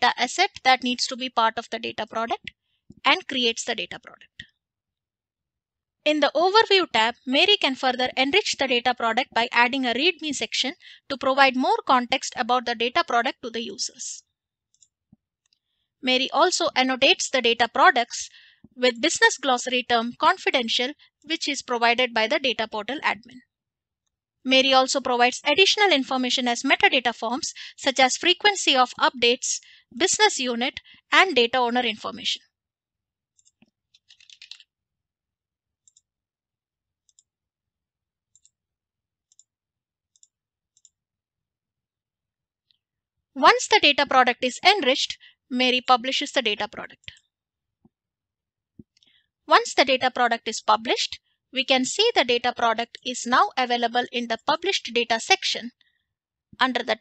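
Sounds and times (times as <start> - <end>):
faint computer mouse clicks: 14.7 - 15.7, 33.4 - 34.6, 35.8 - 36.1, 37.1 - 37.3, 40.1 - 41.0.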